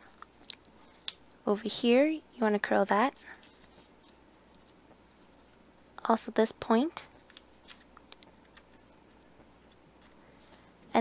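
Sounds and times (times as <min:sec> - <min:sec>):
paper rustling: 0:03.1 - 0:06.0, 0:07.1 - 0:10.7.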